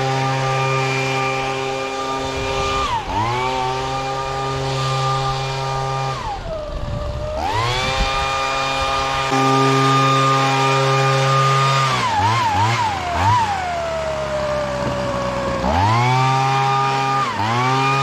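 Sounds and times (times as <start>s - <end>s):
leaf blower engine revving: 0.0s - 18.0s.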